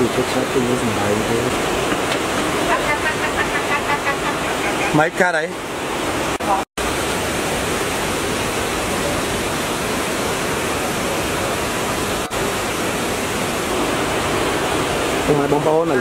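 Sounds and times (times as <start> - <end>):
stream rushing over rocks: 0.0 - 16.0.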